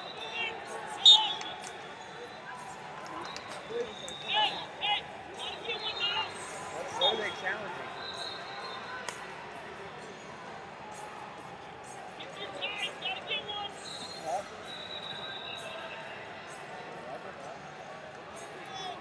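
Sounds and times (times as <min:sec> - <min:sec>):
crowd chatter in arena: 0:00.0 - 0:19.0.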